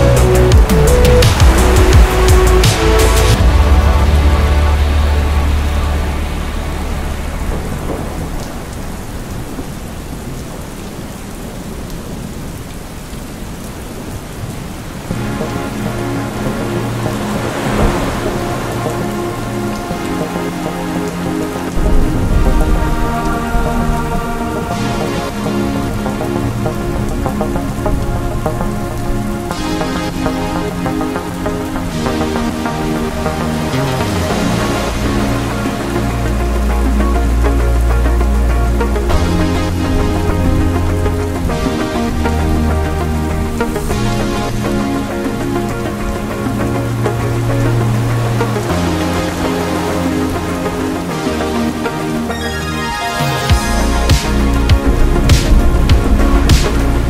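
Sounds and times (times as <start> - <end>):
ambient synth chords: 0.0 - 9.7, 15.1 - 57.0
thunder rumbling: 0.0 - 12.6, 15.1 - 50.9, 53.5 - 57.0
steady rain: 0.0 - 57.0.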